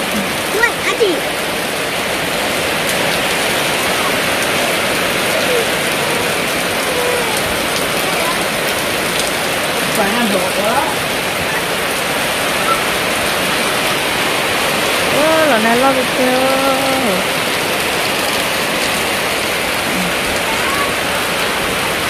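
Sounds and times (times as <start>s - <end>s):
heavy rain on a roof: 0.0s - 22.0s
faint voice: 5.2s - 8.6s, 19.9s - 21.3s.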